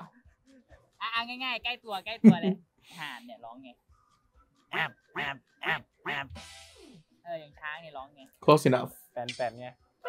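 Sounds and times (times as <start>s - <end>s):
man imitating goose honks: 4.7s - 6.4s.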